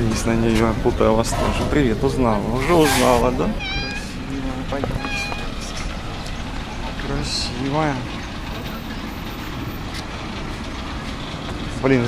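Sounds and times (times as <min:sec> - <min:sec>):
street traffic rumble: 0:00.0 - 0:12.0
truck: 0:00.0 - 0:12.0.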